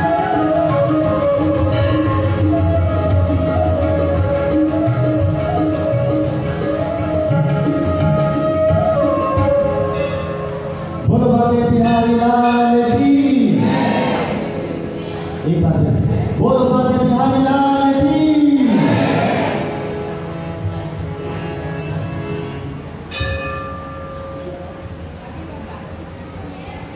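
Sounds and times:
harmonium: 0.0s - 23.5s
temple bell ringing: 9.8s - 11.1s, 11.7s - 13.2s, 22.1s - 25.0s
man singing devotional song: 11.0s - 13.7s, 15.4s - 19.2s.

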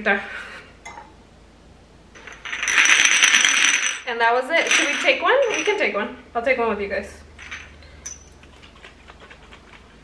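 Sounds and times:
glass bottles clinking: 2.2s - 5.9s, 7.4s - 8.4s.

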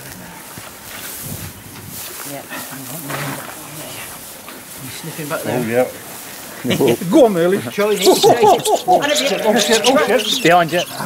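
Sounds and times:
dogs rummaging in hay: 0.7s - 8.5s.

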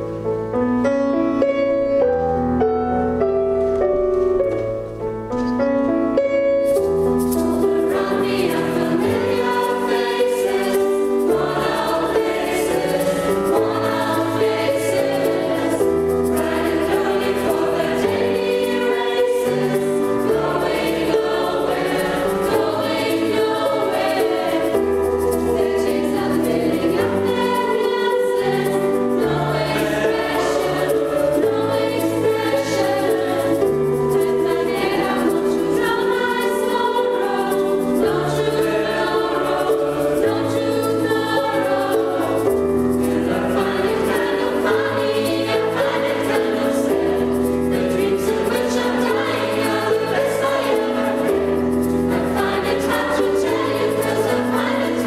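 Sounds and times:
piano accompaniment: 0.0s - 55.0s
mixed choir singing: 7.2s - 55.0s.

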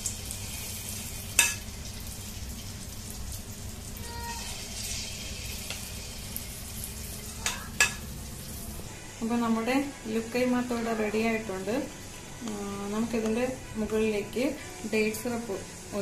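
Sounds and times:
dough deep-frying in hot oil: 0.0s - 11.9s.

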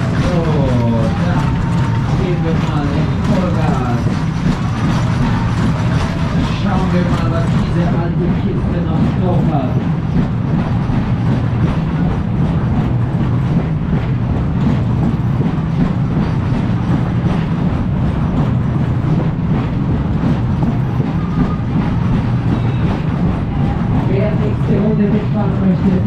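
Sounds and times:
carousel ride rumbling: 0.0s - 26.0s
cars clattering over track: 0.0s - 26.0s.

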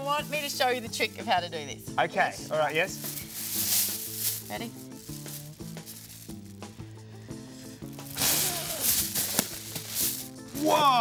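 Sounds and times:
background music of held notes: 0.0s - 11.0s
air rushing into plastic bag: 3.0s - 10.6s.

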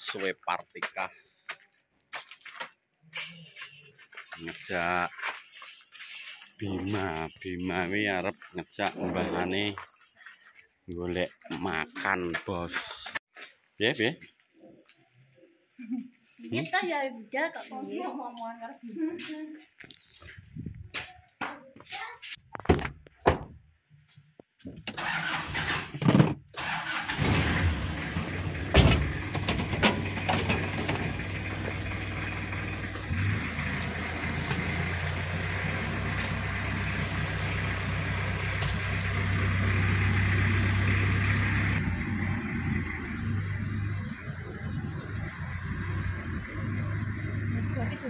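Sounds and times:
car engine starting and idling: 24.8s - 48.0s.

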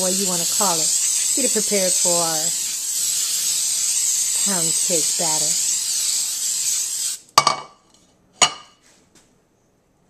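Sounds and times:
cooking spray hissing: 0.0s - 7.4s
metal pan clanking: 7.4s - 7.8s, 8.4s - 8.7s.

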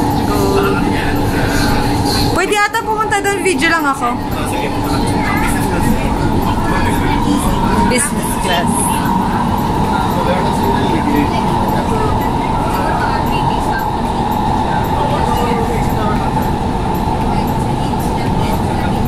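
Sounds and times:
high whine: 0.0s - 19.0s
train rumbling through tunnel: 0.0s - 19.0s.

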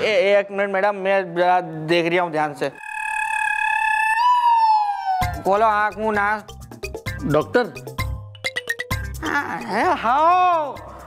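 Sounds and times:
high whistle-like tone: 2.6s - 5.4s.

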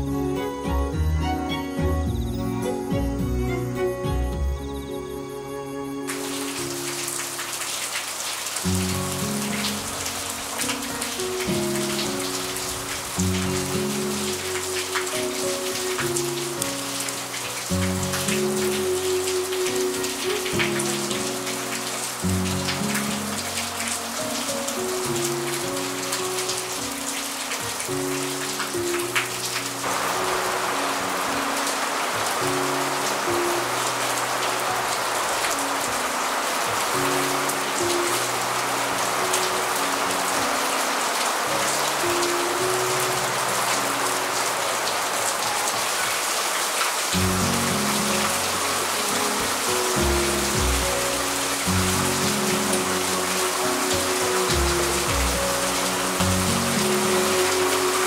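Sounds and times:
background music melody: 0.0s - 58.0s
steady hiss: 6.1s - 58.0s
wood fire crackling and hissing: 6.1s - 58.0s.

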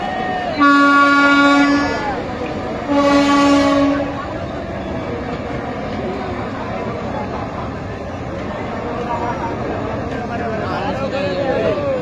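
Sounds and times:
locomotive air horn blasts: 0.6s - 2.0s, 2.8s - 4.2s.

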